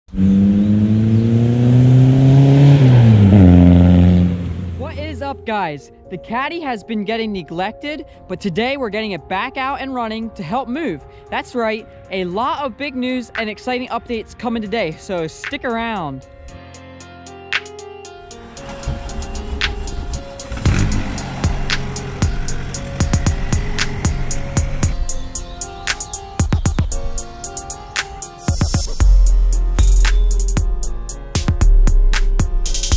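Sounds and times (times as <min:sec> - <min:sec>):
diesel engine accelerating past: 0:00.1 - 0:04.8, 0:18.4 - 0:25.3
hip-hop beat music: 0:12.3 - 0:32.9.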